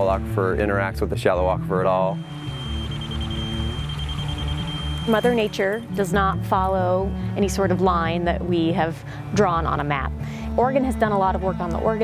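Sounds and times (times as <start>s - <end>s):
thin high steady tone: 2.0s - 7.3s.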